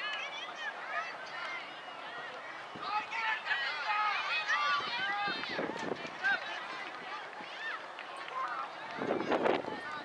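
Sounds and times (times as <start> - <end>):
children shouting and calling out: 0.0 - 10.0.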